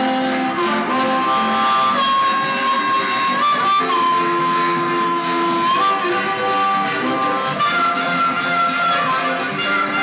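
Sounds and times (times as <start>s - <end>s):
blues harmonica bent notes: 0.0s - 10.0s
resonator guitar: 0.0s - 10.0s.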